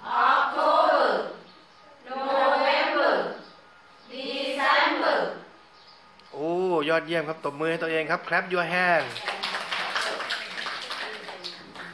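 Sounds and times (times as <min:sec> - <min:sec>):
small group applauding: 0:08.9 - 0:11.9.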